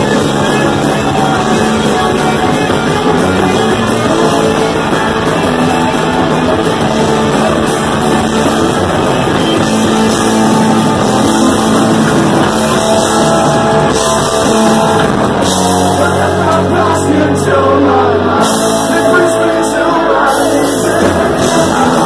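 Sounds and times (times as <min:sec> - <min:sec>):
punk rock band playing live: 0:00.0 - 0:22.0.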